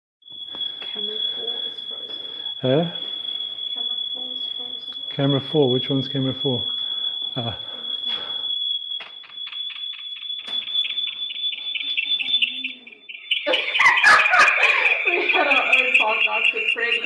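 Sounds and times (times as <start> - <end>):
microphone feedback whistle: 0.2 - 17.0.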